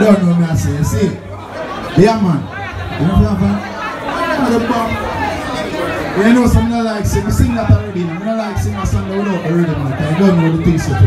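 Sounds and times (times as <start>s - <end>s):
crowd chatter: 0.0s - 11.0s
men talking over microphone: 0.0s - 11.0s.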